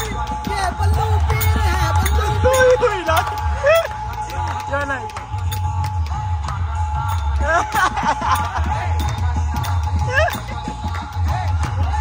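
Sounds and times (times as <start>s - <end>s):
dholak drumming: 0.0s - 12.0s.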